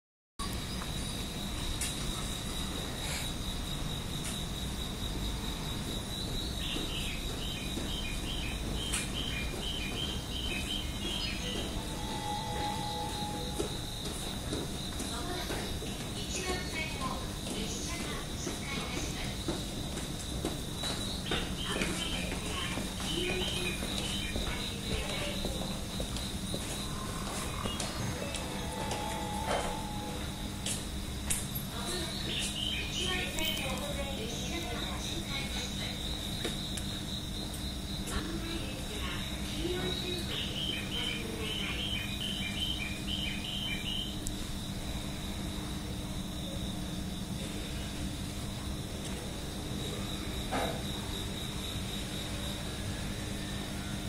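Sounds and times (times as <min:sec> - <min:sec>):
crickets chirping: 0:00.4 - 0:54.0
low hum: 0:26.8 - 0:31.5.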